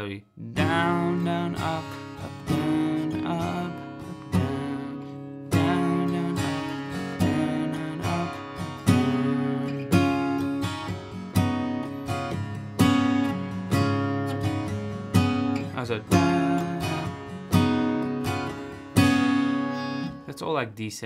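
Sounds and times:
acoustic guitar chords ringing: 0.4s - 20.6s.

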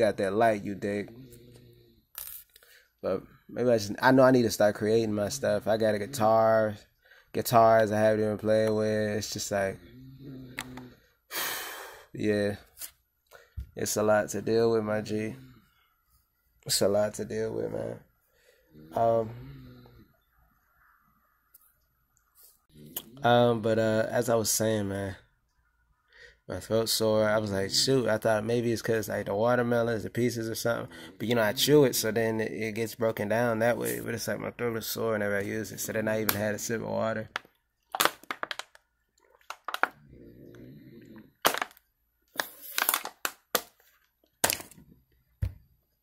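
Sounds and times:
plastic bottle crackling: 37.3s - 40.0s, 41.4s - 44.8s.

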